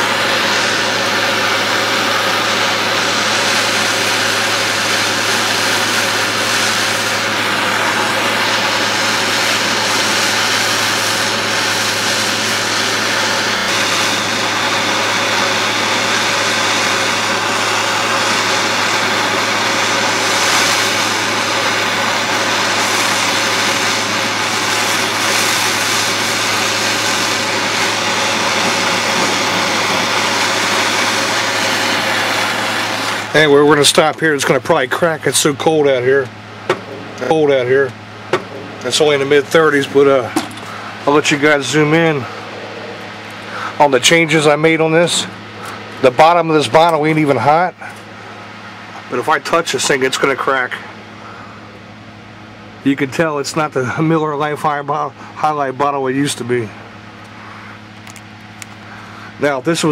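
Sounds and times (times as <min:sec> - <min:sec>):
blowtorch flame roaring hiss: 0:00.0 - 0:59.9.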